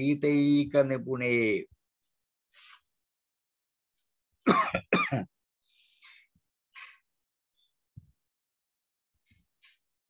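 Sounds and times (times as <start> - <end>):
man coughing: 4.5 - 5.3.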